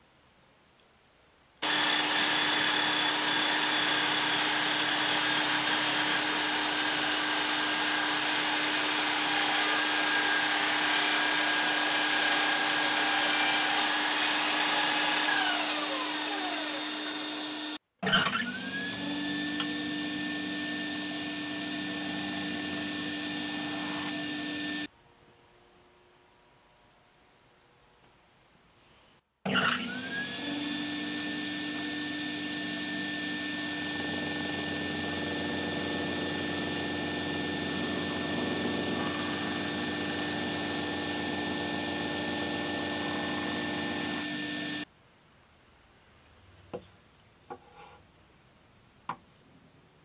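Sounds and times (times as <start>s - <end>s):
power tool motor starting up: 1.6s - 24.9s, 29.5s - 44.9s
table saw motor running: 1.6s - 24.9s, 29.5s - 44.9s.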